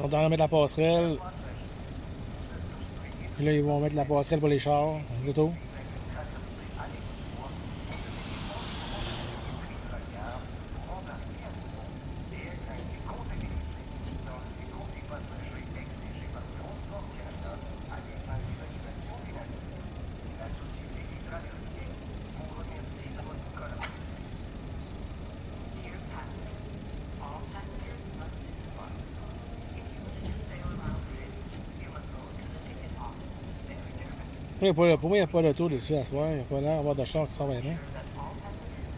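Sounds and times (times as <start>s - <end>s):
steady low rumble: 0.0s - 34.6s.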